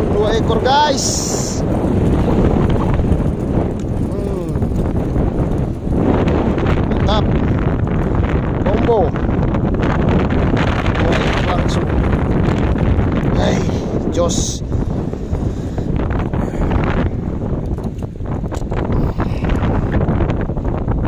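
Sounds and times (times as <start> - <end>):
person's voice: 0.0 - 1.6, 4.1 - 4.7, 6.9 - 7.3, 11.0 - 12.0, 13.3 - 14.7, 19.0 - 20.0
wind buffeting microphone: 0.0 - 21.0.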